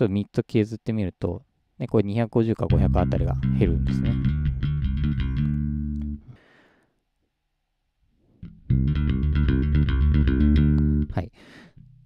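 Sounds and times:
distorted electric bass notes: 0:02.7 - 0:06.3, 0:08.4 - 0:11.2.

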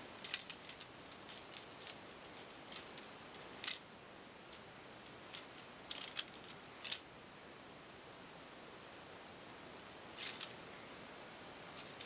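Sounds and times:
plastic toys clicking: 0:00.1 - 0:03.9, 0:05.3 - 0:07.0, 0:10.2 - 0:10.6, 0:11.8 - 0:12.0.

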